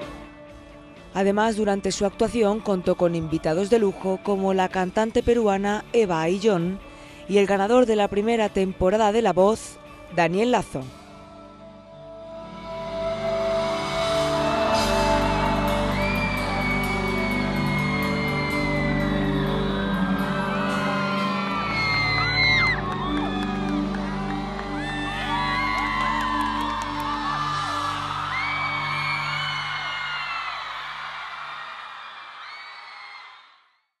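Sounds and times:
concert music: 0:11.0 - 0:30.5
crowd screaming and cheering: 0:12.3 - 0:33.7.

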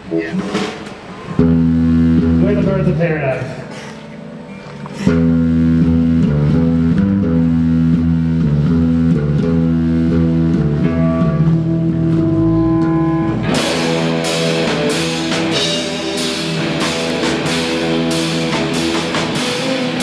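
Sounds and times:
drum kit with cymbals: 0:00.0 - 0:04.3, 0:05.0 - 0:20.0
electric guitars and bass: 0:00.0 - 0:20.0.

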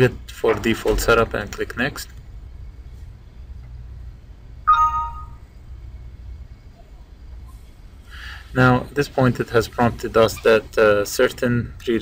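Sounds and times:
low steady hum: 0:01.0 - 0:12.0
system chime tones: 0:04.7 - 0:05.4.

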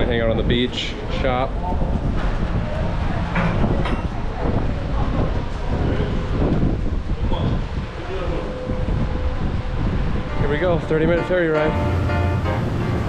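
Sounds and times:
faint indistinct voices: 0:00.0 - 0:11.9
wind buffeting microphone: 0:00.0 - 0:13.0.

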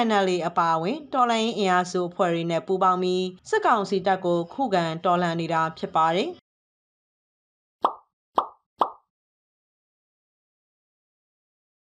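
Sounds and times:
cartoon pop sound effects: 0:07.8 - 0:09.1.

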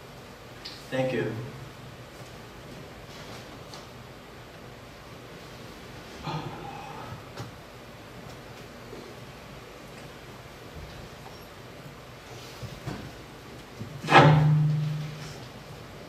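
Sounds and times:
footsteps and handling knocks: 0:12.4 - 0:15.6.

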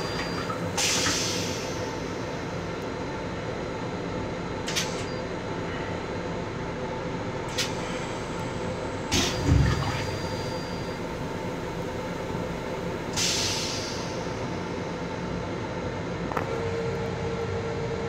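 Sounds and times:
electric railcar rumble and hum: 0:00.0 - 0:18.0.

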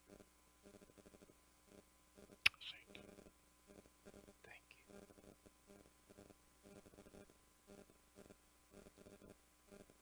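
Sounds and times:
faint whisper: 0:02.5 - 0:03.3, 0:04.3 - 0:05.3.

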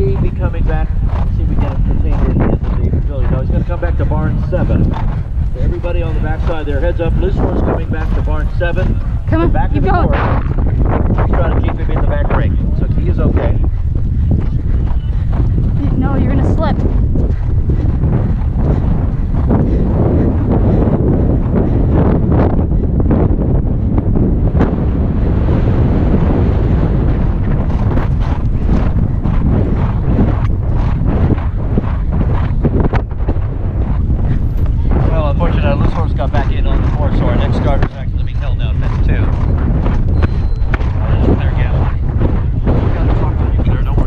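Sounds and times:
horse hoofbeats thudding: 0:00.0 - 0:44.0
wind buffeting microphone: 0:00.0 - 0:44.0.

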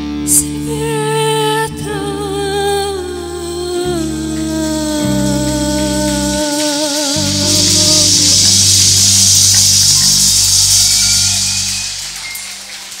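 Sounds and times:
backing track chord: 0:00.0 - 0:12.4
audience applause: 0:05.8 - 0:13.0.

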